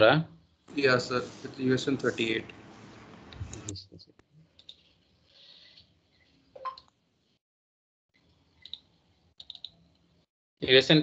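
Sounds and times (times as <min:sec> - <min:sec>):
computer mouse clicks: 0:08.6 - 0:10.1.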